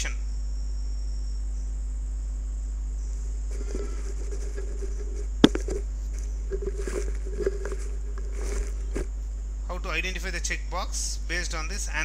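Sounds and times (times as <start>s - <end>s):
faint high-pitched whine: 0.0s - 12.0s
low background hum: 0.0s - 12.0s.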